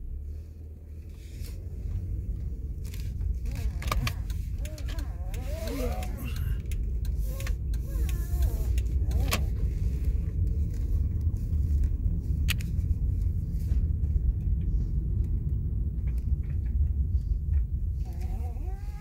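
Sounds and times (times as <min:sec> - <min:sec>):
engine and tyre rumble: 0:00.0 - 0:19.0.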